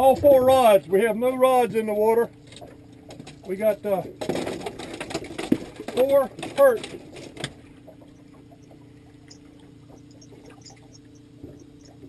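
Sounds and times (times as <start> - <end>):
boat motor humming: 0.0 - 12.0
water around hull: 0.0 - 12.0.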